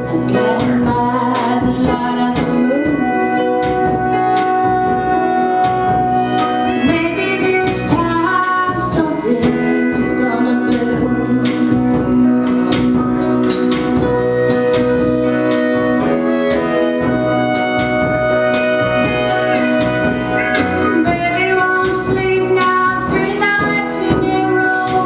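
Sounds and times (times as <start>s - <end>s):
folk-country band playing: 0.0s - 25.0s.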